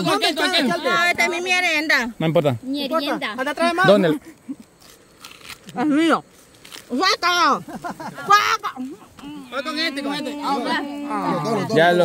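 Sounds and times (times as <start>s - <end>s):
women's wordless exclamations: 8.2s - 12.0s.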